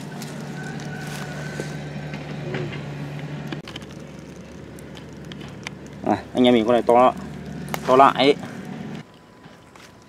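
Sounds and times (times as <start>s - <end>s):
steady low hum: 0.0s - 10.0s
fish splashing and thrashing in water: 3.6s - 6.1s.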